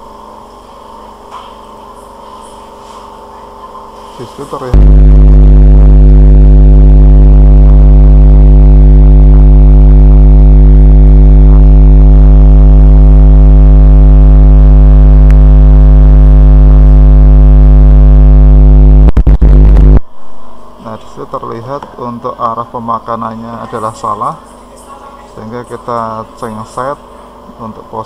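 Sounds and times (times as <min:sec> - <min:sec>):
loud electrical mains hum: 0:00.0 - 0:28.0.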